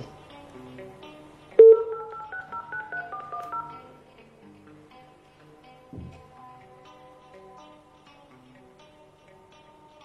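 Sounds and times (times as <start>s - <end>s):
soft background music: 0.0s - 10.0s
telephone keypad tones: 1.6s - 3.9s.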